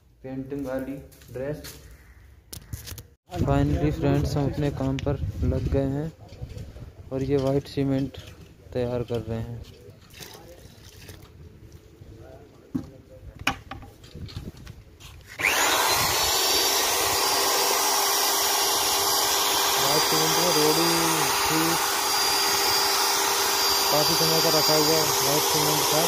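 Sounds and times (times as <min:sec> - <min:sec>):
paddle mixer motor whine: 0:15.3 - 0:26.0.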